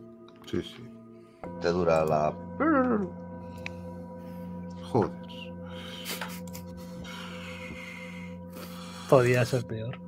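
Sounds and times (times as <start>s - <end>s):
ambient drone music: 0.0s - 10.0s.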